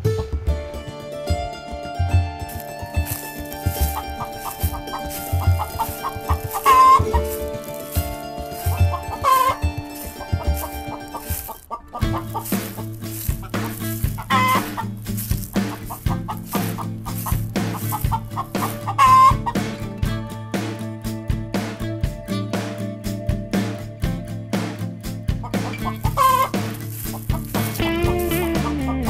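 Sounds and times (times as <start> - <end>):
plucked-string background music: 0.0 - 29.0
hen clucking: 2.5 - 19.9, 25.4 - 29.0.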